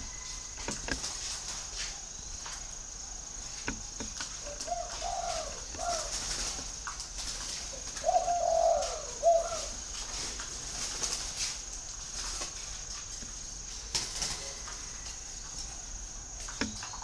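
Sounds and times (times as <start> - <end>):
dove cooing: 4.3 - 6.8, 7.4 - 10.9.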